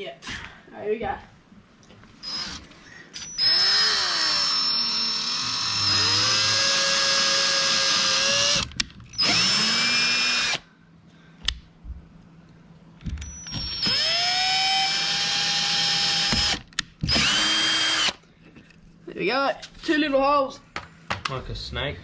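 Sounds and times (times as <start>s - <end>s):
cordless drill boring through plastic: 2.2s - 2.6s, 3.2s - 10.6s, 13.2s - 18.2s.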